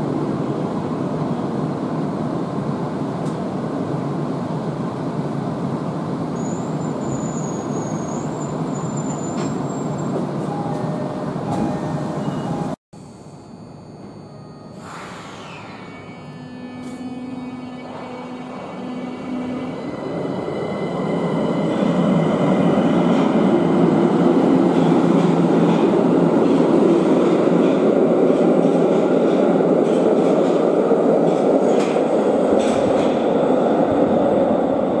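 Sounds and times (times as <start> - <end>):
subway car interior noise: 0.0 - 35.0
train running noise: 5.7 - 12.8, 13.9 - 35.0.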